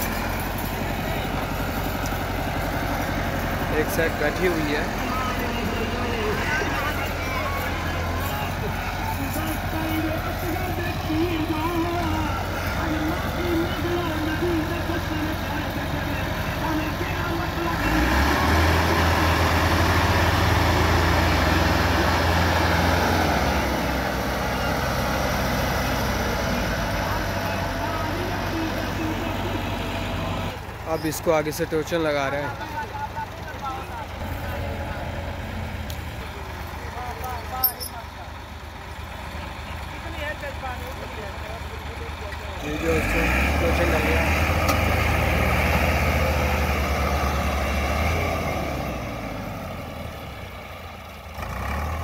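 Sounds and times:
tractor engines straining: 0.0 - 52.0
men calling out: 3.5 - 18.7.

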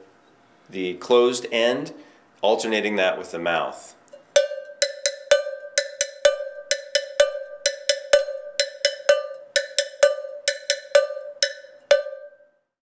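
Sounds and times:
cowbell struck with stick: 4.2 - 12.4.

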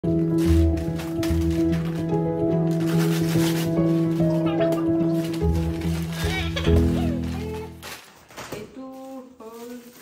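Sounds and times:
background music with held notes: 0.0 - 8.0
paper bag crinkling: 0.1 - 10.0.

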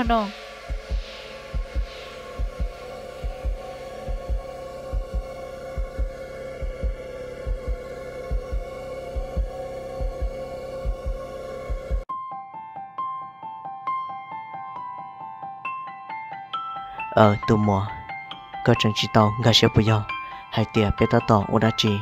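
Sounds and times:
heartbeat-like low thumps: 0.0 - 12.1
steady sustained drone: 0.0 - 12.1.

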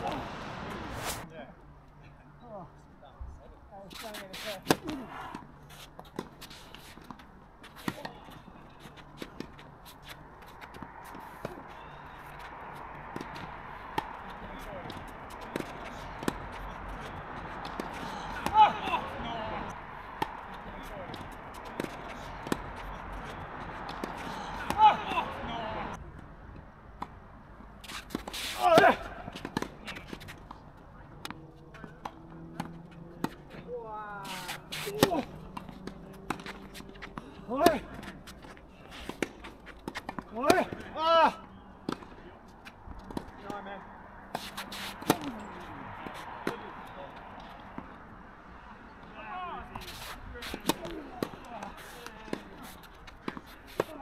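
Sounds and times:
players shouting: 17.8 - 22.5, 23.2 - 26.0, 28.5 - 29.6, 40.3 - 41.6, 49.0 - 52.5
tennis ball struck with rackets: 21.1 - 22.8, 34.3 - 38.1, 44.3 - 45.4, 46.0 - 46.7.

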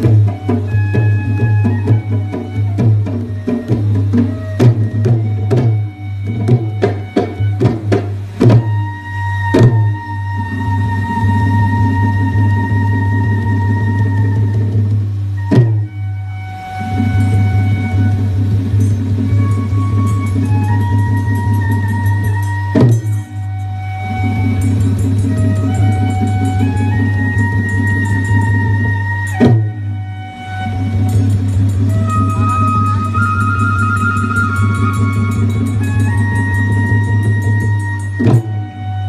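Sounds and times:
barrel drum strokes: 0.0 - 39.0
loud drum stroke: 16.8 - 26.4
heavy ringing strikes: 18.4 - 20.4, 21.1 - 23.7.

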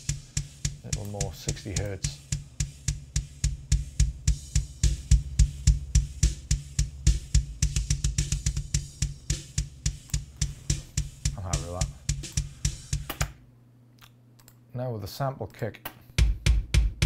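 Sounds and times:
heavy kick drum hits: 0.0 - 13.1, 16.2 - 17.0
snare and cymbals: 0.0 - 13.4.

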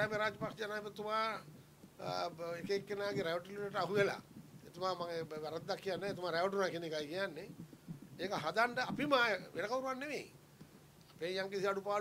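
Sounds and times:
man talking: 0.0 - 7.6, 8.2 - 10.4, 11.2 - 12.0.

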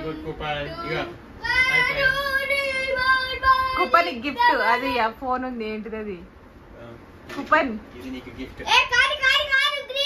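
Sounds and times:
child singing: 0.0 - 4.9.

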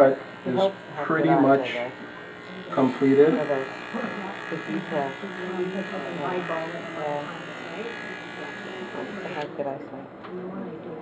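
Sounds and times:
electric hair clippers buzzing: 0.0 - 9.6.

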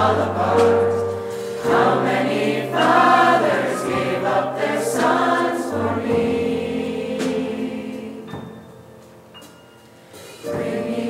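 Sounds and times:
teen choir singing: 0.0 - 8.8, 10.2 - 11.0.

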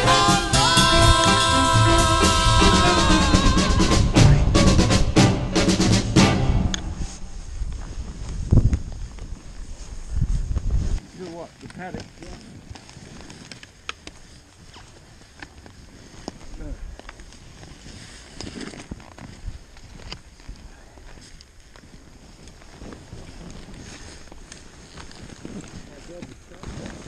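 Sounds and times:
background music: 0.0 - 7.3
boots crunching in snow: 6.9 - 27.0
skis rushing through powder snow: 7.0 - 27.0
ski poles clicking: 10.6 - 27.0.

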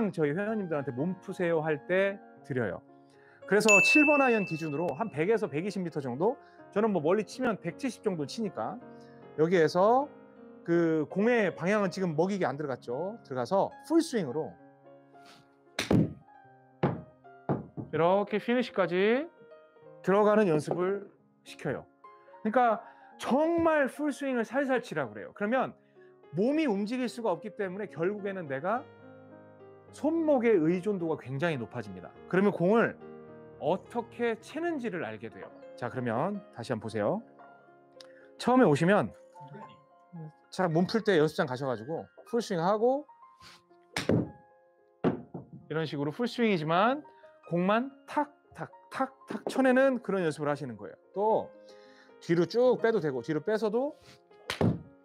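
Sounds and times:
light background music: 0.0 - 55.0.

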